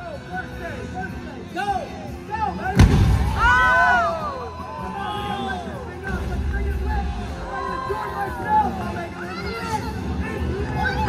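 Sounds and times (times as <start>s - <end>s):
explosion boom: 2.8s - 3.6s.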